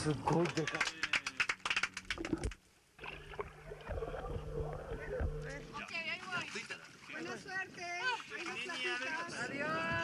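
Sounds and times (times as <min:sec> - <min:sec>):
boat engine humming: 0:01.8 - 0:05.8.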